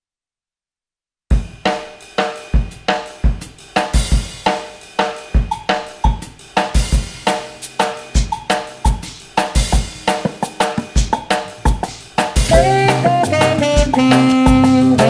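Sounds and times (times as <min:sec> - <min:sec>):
bass drum thumps: 0:01.3 - 0:01.6, 0:11.0 - 0:15.0
drum kit playing bossa nova groove: 0:01.3 - 0:15.0
hand drum: 0:08.9 - 0:15.0.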